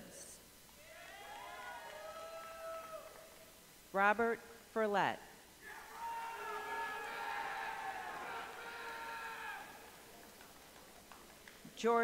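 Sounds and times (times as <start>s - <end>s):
arena room noise: 0.0s - 12.0s
audience member cheering woo: 0.8s - 3.3s.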